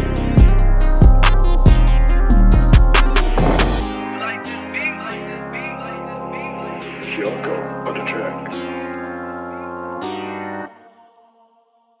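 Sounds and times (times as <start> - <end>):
jazz hip-hop beat: 0.0 - 10.5.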